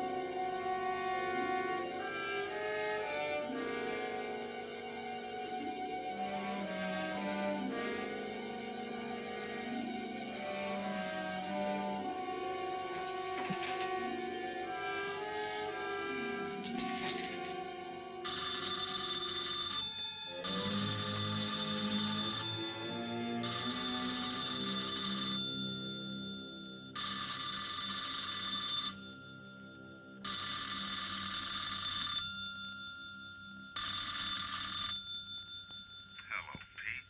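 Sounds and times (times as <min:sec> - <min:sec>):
dramatic orchestral music: 0:00.0 - 0:18.2
telephone bell ringing: 0:00.0 - 0:37.0.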